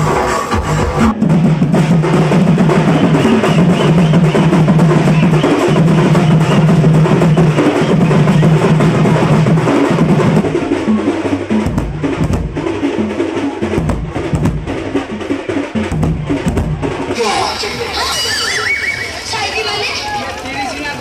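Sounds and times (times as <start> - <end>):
heavy low drum strokes: 0.0 - 18.0
large drum beaten with sticks: 0.0 - 18.0
percussion band of drums and gongs: 0.0 - 21.0.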